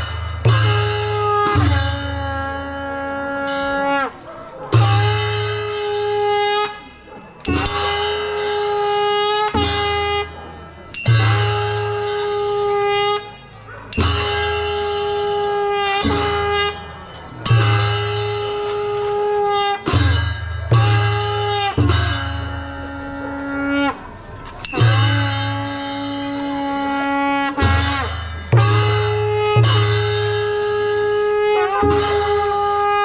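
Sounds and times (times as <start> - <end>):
wind instrument long notes: 0.0 - 13.4, 14.0 - 33.0
barrel drums striking: 27.6 - 30.8.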